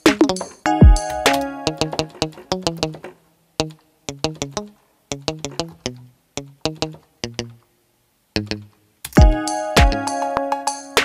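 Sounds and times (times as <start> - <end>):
synthesizer plucked notes: 0.0 - 4.6, 9.2 - 10.7.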